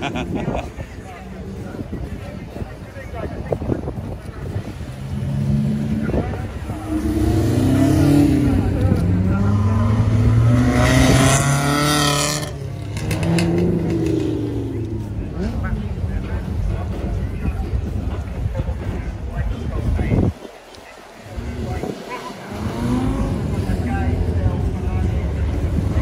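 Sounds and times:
car engine accelerating: 0:04.7 - 0:18.0, 0:21.2 - 0:26.0.

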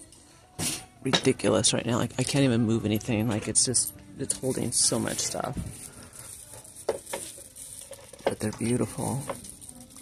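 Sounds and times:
store background hiss: 0:00.0 - 0:10.0.

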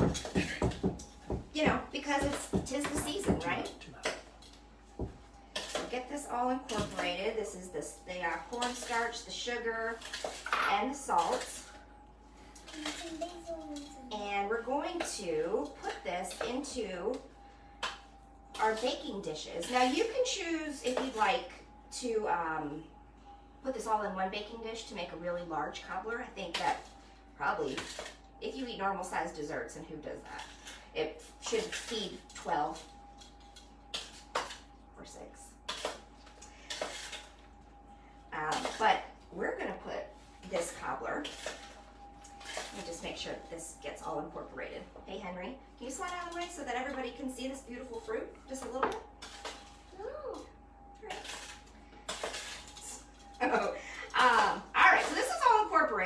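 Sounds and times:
voices: 0:01.5 - 0:04.1, 0:05.9 - 0:10.0, 0:12.8 - 0:17.3, 0:52.8 - 0:56.0.

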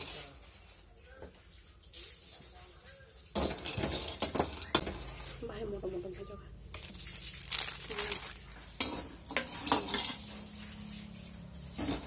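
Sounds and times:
food frying: 0:00.0 - 0:12.0
metal ladle scraping a wok: 0:03.3 - 0:05.5, 0:08.5 - 0:12.0.

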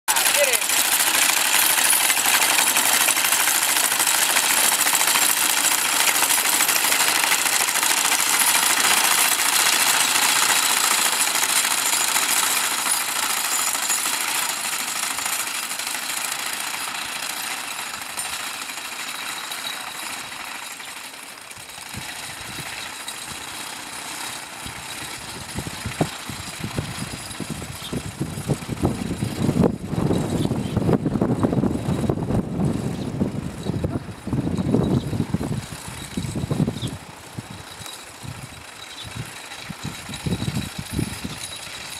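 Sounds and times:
sickle-bar mower clattering: 0:00.1 - 0:41.9.

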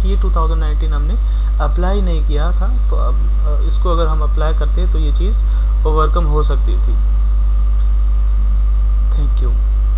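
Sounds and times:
faint high steady tones: 0:00.0 - 0:09.9
low mains hum: 0:00.0 - 0:09.9.

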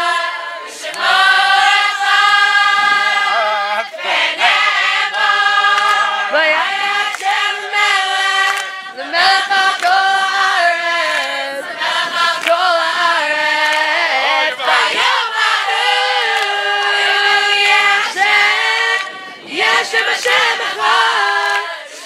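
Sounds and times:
young women singing together: 0:00.0 - 0:22.0.

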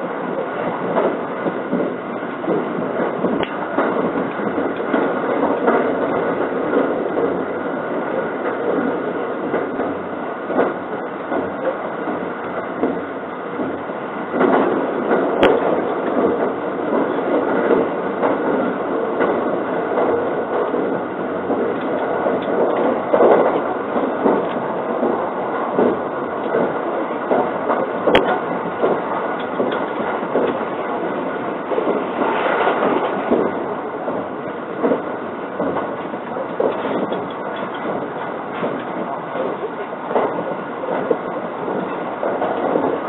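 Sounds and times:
train wheels on rail: 0:00.0 - 0:43.0.

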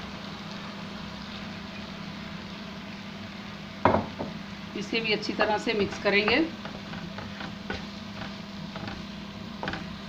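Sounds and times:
constant hum: 0:00.0 - 0:10.0
food sizzling in a pan: 0:00.0 - 0:10.0
wooden spatula knocking pan: 0:05.7 - 0:10.0.

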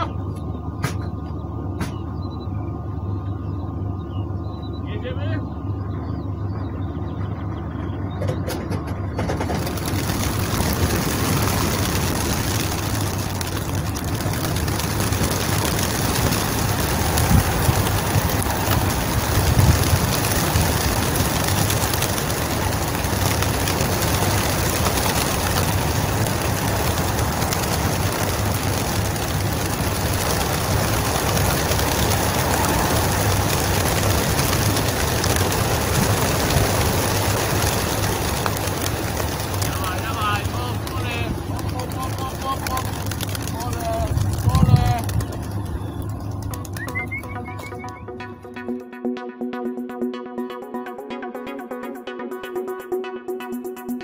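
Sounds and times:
low steady truck hum: 0:00.0 - 0:48.4
pigeon wingbeats rushing: 0:08.3 - 0:48.1.

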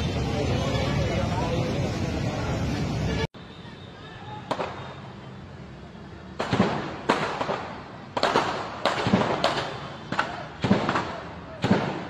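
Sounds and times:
gunshots with echo: 0:06.4 - 0:12.0.

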